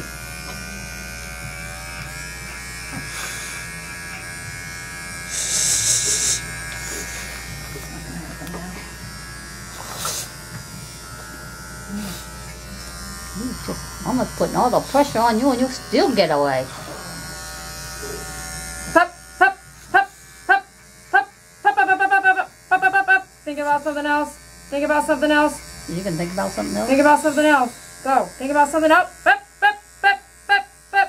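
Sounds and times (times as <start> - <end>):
electric clipper running: 0.0 - 31.0
short hissing burst: 5.3 - 7.4.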